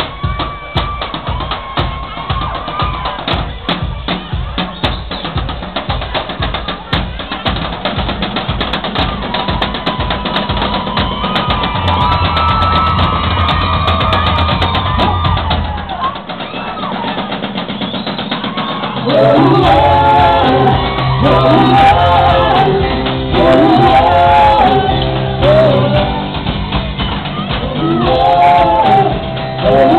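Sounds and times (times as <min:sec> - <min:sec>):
drum kit fast beat: 0:00.0 - 0:29.9
live band playing: 0:00.0 - 0:29.9
loud singing: 0:18.0 - 0:29.9.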